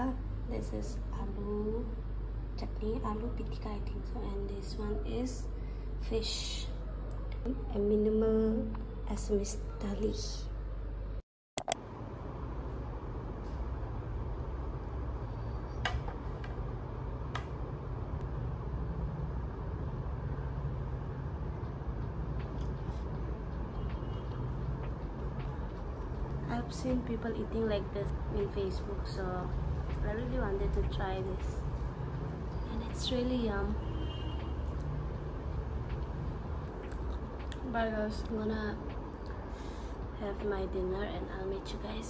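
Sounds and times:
low room hum: 0:00.0 - 0:42.0
low background rumble: 0:11.8 - 0:42.0.

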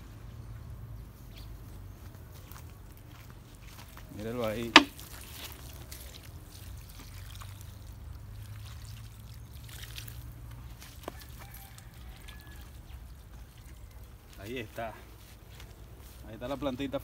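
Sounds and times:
water trickling onto soil: 0:01.7 - 0:17.0.

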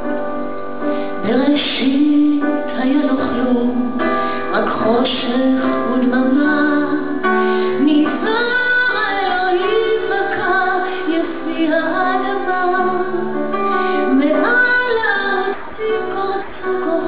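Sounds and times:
woman singing a slow ballad: 0:01.2 - 0:17.0.

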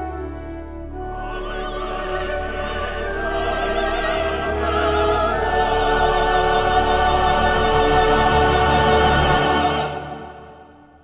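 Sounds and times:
choir singing: 0:00.0 - 0:11.0
operatic soloists singing: 0:00.4 - 0:11.0.

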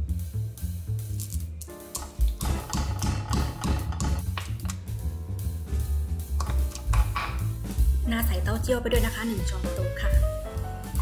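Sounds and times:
background music: 0:00.0 - 0:11.0
pestle pounding in metal mortar: 0:02.4 - 0:04.4.

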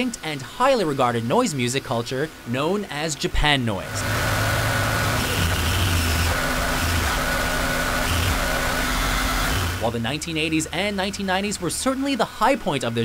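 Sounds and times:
harsh noise music: 0:03.9 - 0:09.9.

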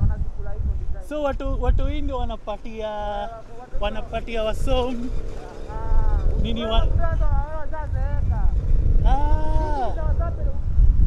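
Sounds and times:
voices talking: 0:00.0 - 0:10.8
street traffic rumble: 0:00.0 - 0:11.0.

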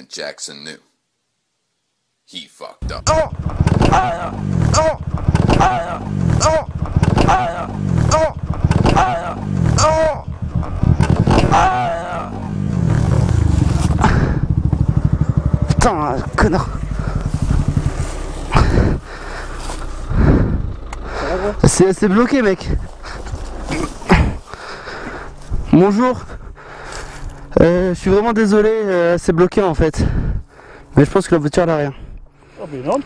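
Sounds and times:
motorcycle engine revving: 0:02.8 - 0:25.7.

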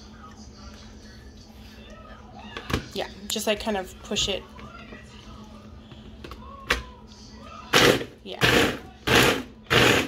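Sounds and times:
food chopper motor grinding: 0:07.7 - 0:10.0.

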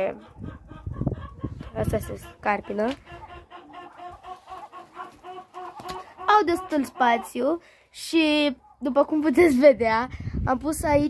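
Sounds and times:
chicken clucking softly: 0:00.0 - 0:07.6.

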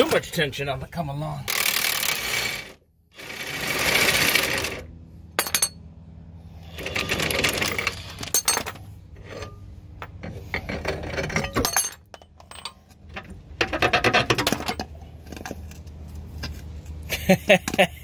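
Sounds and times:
metal tools clinking and knocking: 0:05.4 - 0:05.8, 0:07.2 - 0:15.6.

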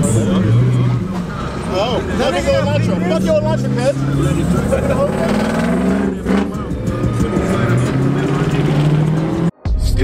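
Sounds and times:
car engine accelerating: 0:00.0 - 0:09.6
hip hop music: 0:02.9 - 0:10.0.

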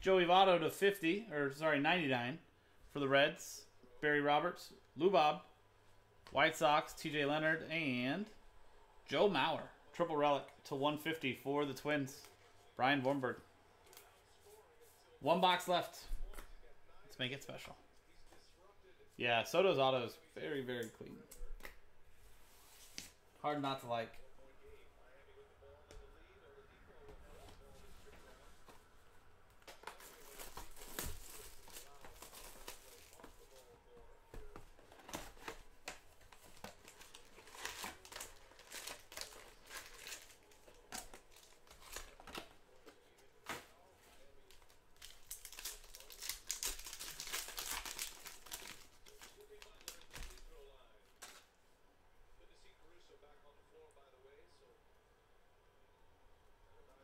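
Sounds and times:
card pack wrappers crinkling: 0:29.6 - 0:33.7, 0:34.5 - 0:43.6, 0:44.4 - 0:50.5.

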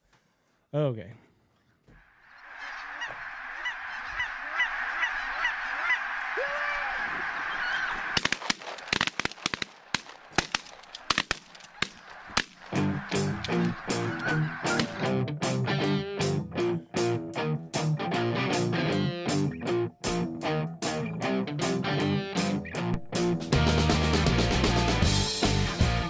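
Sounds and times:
geese honking: 0:02.0 - 0:09.0, 0:09.9 - 0:16.0
sharp cracks: 0:07.2 - 0:15.2
electric guitar music: 0:12.8 - 0:26.0.

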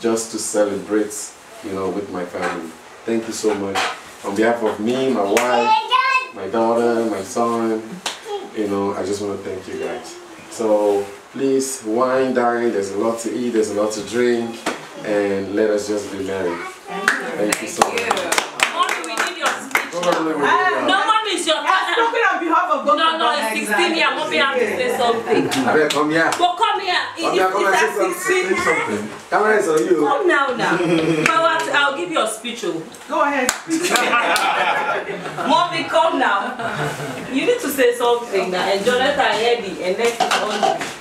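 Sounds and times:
dishes and cutlery clinking: 0:03.4 - 0:04.0, 0:40.0 - 0:41.0
people clapping: 0:05.3 - 0:05.6, 0:17.0 - 0:20.5, 0:25.5 - 0:26.6, 0:31.2 - 0:31.8, 0:33.5 - 0:35.4
voices talking: 0:14.3 - 0:40.9.

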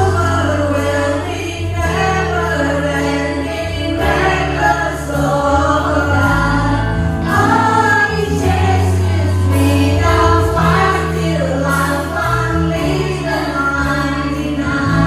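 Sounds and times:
keyboard: 0:00.0 - 0:15.0
steady bass line: 0:00.0 - 0:15.0
voices singing together: 0:00.0 - 0:15.0.

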